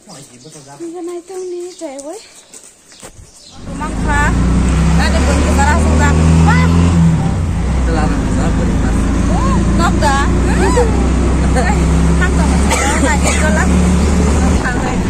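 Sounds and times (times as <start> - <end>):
people talking: 0.0 - 2.2, 3.6 - 15.0
vehicle engine droning: 3.6 - 15.0.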